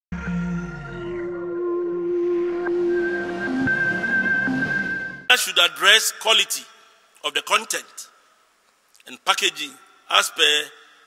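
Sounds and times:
musical sting of held tones: 0:00.2 - 0:05.3.

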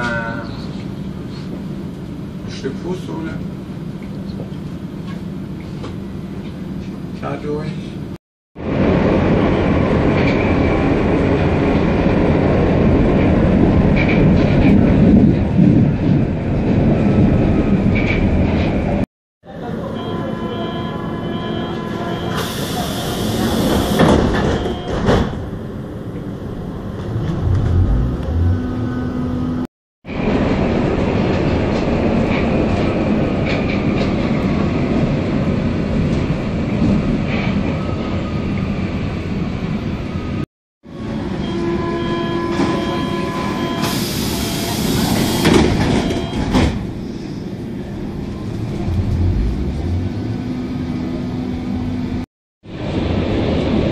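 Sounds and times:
steady tones: 0:26.4 - 0:29.7
vehicle interior rumble and rattle: 0:26.8 - 0:29.7.

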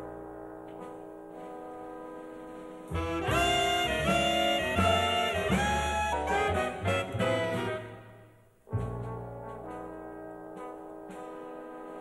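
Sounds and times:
jazz big band playing: 0:00.8 - 0:08.1, 0:08.7 - 0:12.0.

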